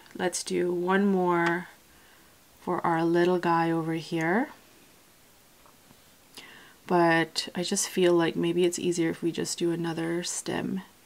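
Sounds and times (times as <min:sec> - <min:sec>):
woman's voice: 0:00.2 - 0:01.8, 0:02.6 - 0:04.6, 0:06.9 - 0:10.9
faint intake of breath: 0:06.4 - 0:06.8.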